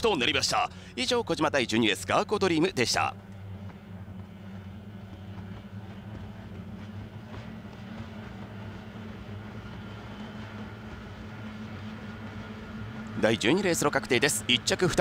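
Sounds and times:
outboard boat engines droning: 0.0s - 15.0s.

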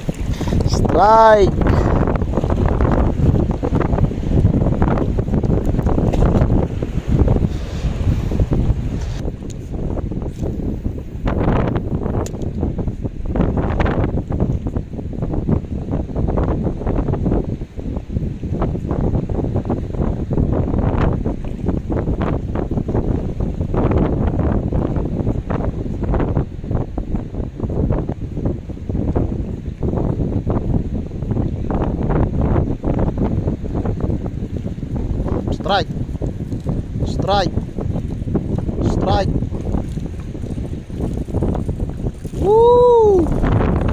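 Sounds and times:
sea wash: 0.0s - 43.9s
wind buffeting microphone: 0.0s - 43.9s.

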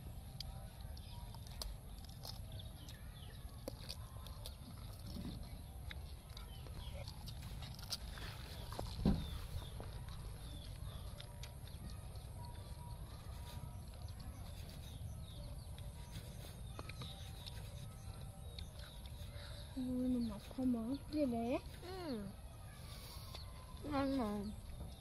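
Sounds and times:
thump: 9.0s - 9.4s.

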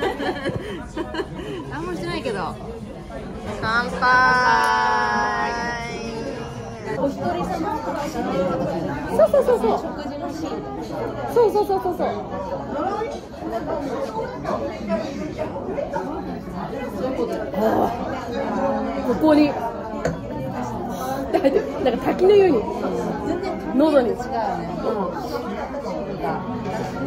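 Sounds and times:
overlapping voices chatter: 0.0s - 23.4s.

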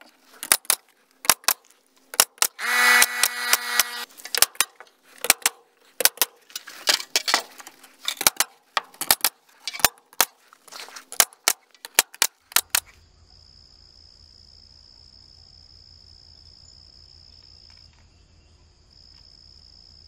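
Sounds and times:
sharp clicks and knocks: 0.0s - 12.9s
tool motor whine: 2.4s - 4.1s.

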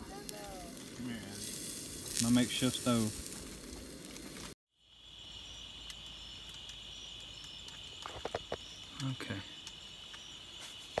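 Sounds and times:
food sizzling in a skillet: 0.0s - 4.6s
night insects chorus: 4.7s - 11.0s.

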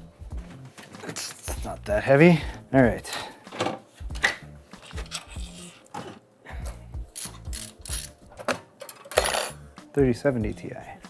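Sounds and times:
background music with bass: 0.0s - 8.6s, 9.2s - 11.0s
metal computer parts clicking: 4.8s - 5.8s, 7.1s - 9.5s.

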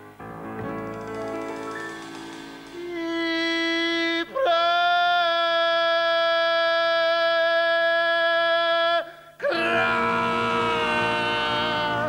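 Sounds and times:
band playing: 0.6s - 4.3s
male singer holding a wailing note: 2.8s - 12.0s.

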